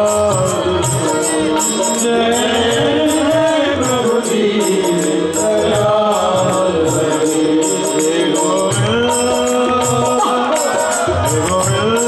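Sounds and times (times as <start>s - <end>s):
harmonium: 0.0s - 12.0s
men singing devotional song: 0.0s - 12.0s
steady percussion beat: 0.0s - 12.0s.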